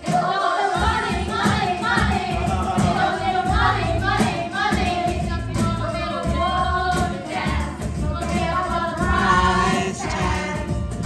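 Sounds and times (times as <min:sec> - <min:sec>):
group singing into microphones: 0:00.0 - 0:11.0
karaoke backing track: 0:00.0 - 0:11.0.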